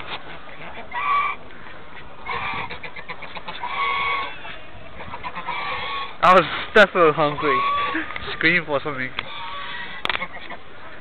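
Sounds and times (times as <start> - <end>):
ducks quacking: 0.0 - 11.0.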